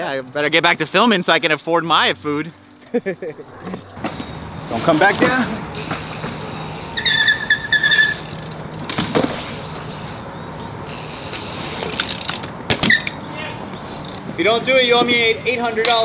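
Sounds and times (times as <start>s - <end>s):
bike tyres rolling on concrete: 2.7s - 16.0s
short high squeak: 6.9s - 8.4s.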